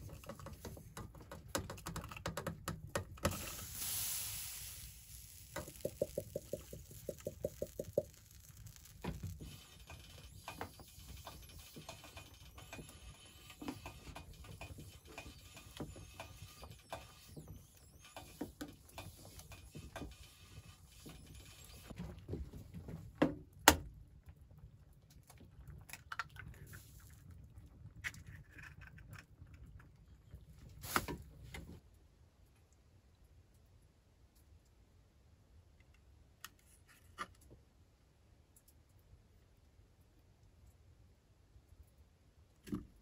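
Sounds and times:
brief hiss: 3.2s - 11.8s, 30.8s - 31.2s
bread tapping on stove top: 5.5s - 8.8s.

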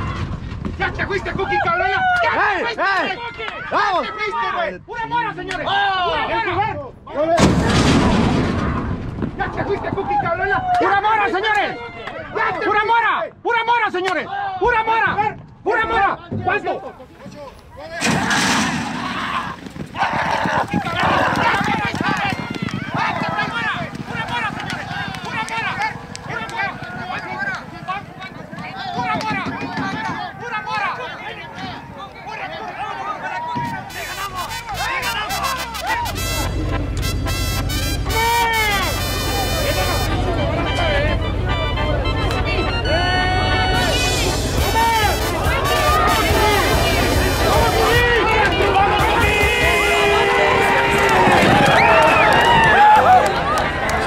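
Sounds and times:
crowd voices shouting: 17.8s - 54.0s.

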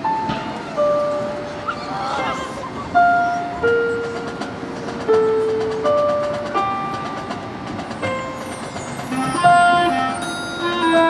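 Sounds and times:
marching band front ensemble melody: 8.3s - 11.0s.

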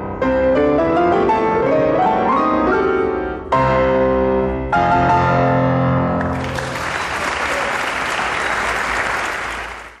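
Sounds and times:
audience applause: 6.2s - 10.0s.

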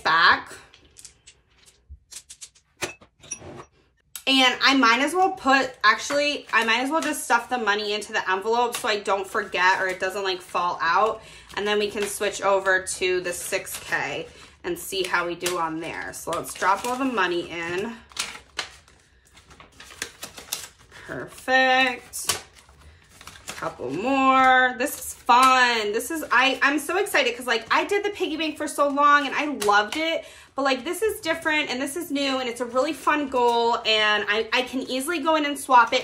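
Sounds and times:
banknotes crinkling in plastic pouch: 9.3s - 29.9s.

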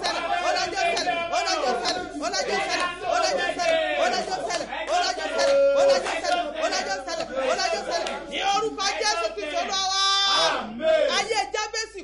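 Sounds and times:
woman talking forcefully: 0.0s - 4.7s.

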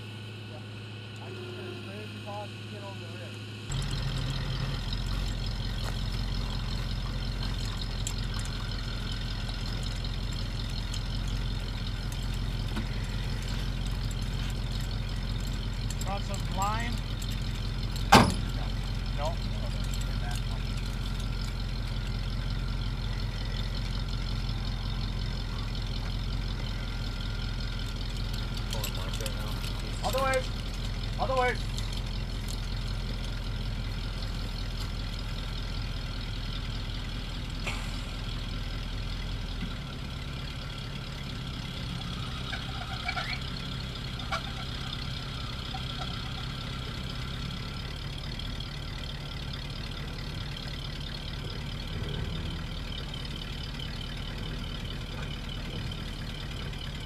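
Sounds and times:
truck engine idling: 0.0s - 57.0s.

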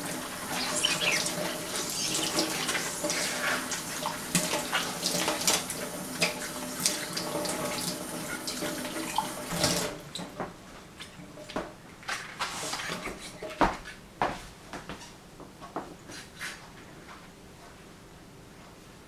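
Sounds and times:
tap water running into sink: 0.0s - 10.3s.

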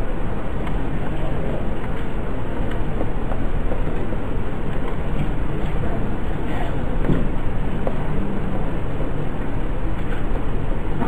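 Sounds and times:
loud low rumbling: 0.0s - 11.0s.

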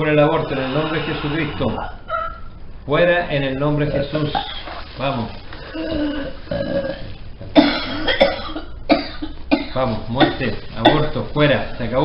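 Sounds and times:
woman retching and gagging: 4.3s - 4.8s, 5.6s - 10.3s.

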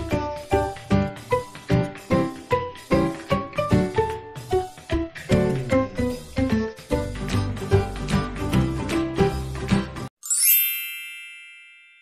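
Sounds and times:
music: 0.0s - 11.5s
sparkle chime: 10.2s - 12.0s.

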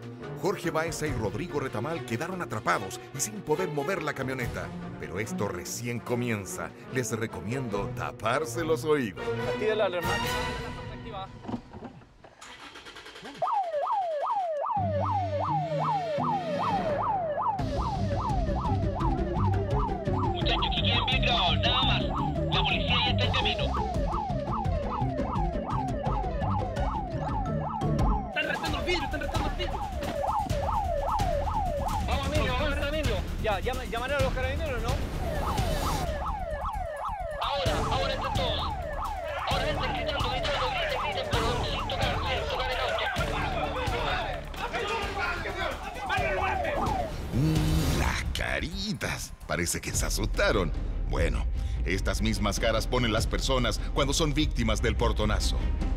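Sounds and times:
electronic alarm siren yelping: 12.7s - 33.2s, 34.8s - 44.5s, 45.4s - 47.4s.

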